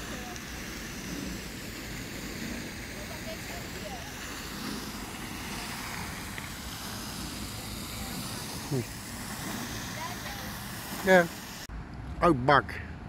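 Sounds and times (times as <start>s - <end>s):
steady outdoor rushing noise: 0.0s - 13.0s.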